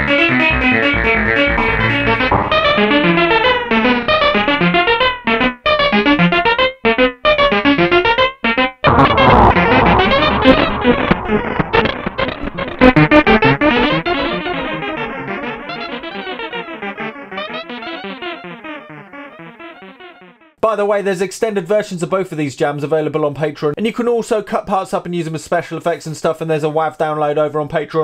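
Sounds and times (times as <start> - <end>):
synthesizer notes with echoing delay: 0.0 - 20.6.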